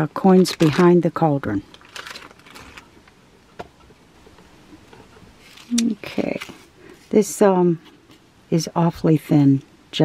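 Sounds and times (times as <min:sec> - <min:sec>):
person speaking: 0:00.0 - 0:01.7, 0:04.7 - 0:07.8.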